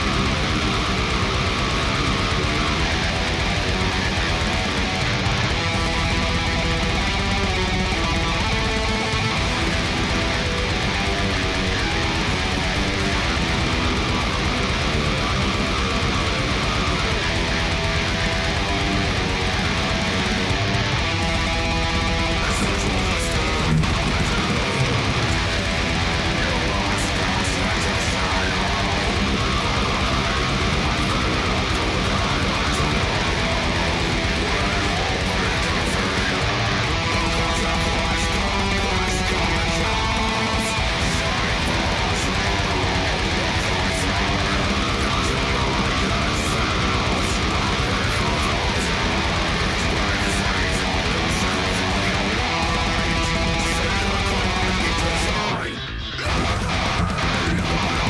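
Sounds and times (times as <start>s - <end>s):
electric guitar riffing: 0.0s - 58.0s
heavy metal song: 0.0s - 58.0s.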